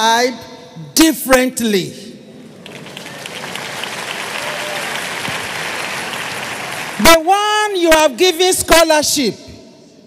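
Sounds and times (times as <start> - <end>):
congregation applauding: 2.4 - 7.8.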